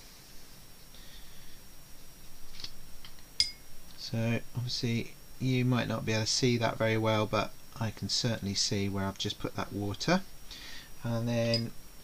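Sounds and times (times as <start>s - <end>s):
paintbrush clink: 3.4s - 3.7s, 11.5s - 11.7s.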